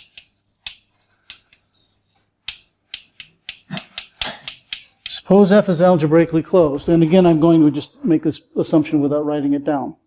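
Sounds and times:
chalk tapping and scraping: 0:00.0 - 0:05.9.

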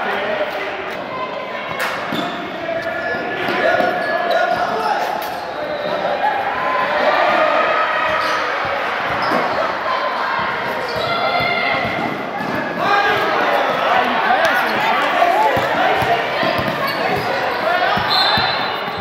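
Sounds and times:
basketball bouncing on gym floor: 0:15.5 - 0:19.0.

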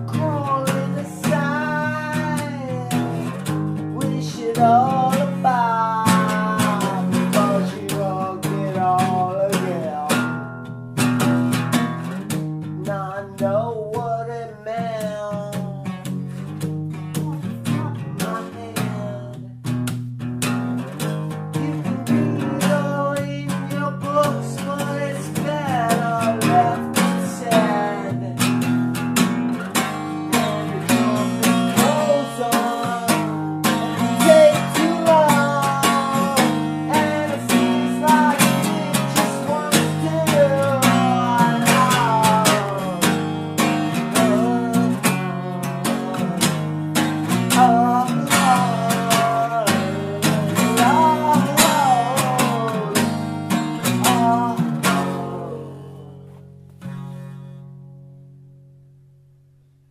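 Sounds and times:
instrumental guitar music: 0:00.0 - 0:59.9.

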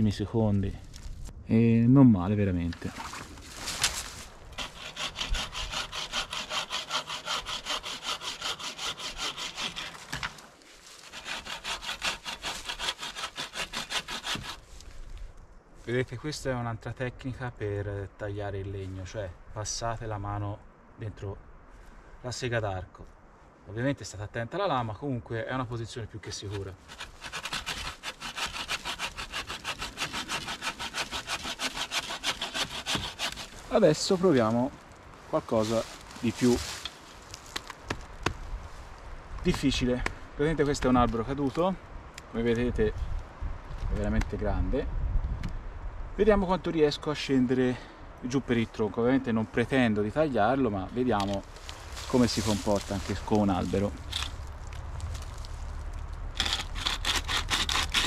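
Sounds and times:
hand saw cutting branch: 0:04.6 - 0:14.7, 0:26.4 - 0:34.4, 0:56.4 - 0:58.0.

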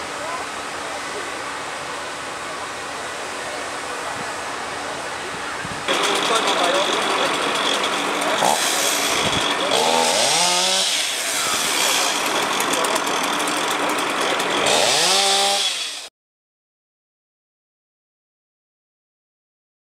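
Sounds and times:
engine revving: 0:05.9 - 0:16.1.

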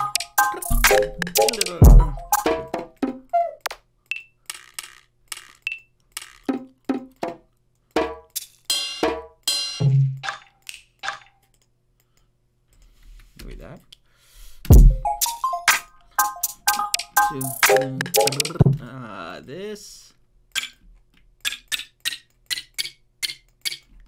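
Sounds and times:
drum one-shot samples: 0:00.0 - 0:02.9, 0:14.7 - 0:18.8.

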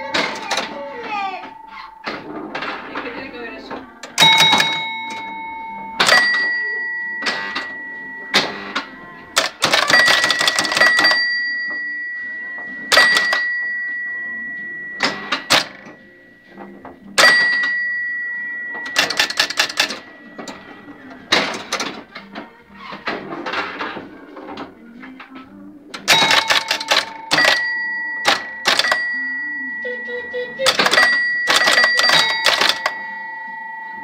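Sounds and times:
pinball score bells ringing: 0:00.0 - 0:24.0, 0:26.0 - 0:34.0
rapid clicking of relays: 0:09.4 - 0:11.3, 0:12.9 - 0:13.5, 0:15.0 - 0:15.8, 0:18.8 - 0:20.5, 0:26.0 - 0:29.1, 0:30.6 - 0:33.0.

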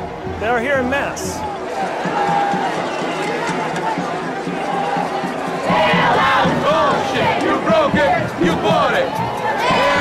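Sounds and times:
crowd of protesters shouting: 0:01.4 - 0:10.0.

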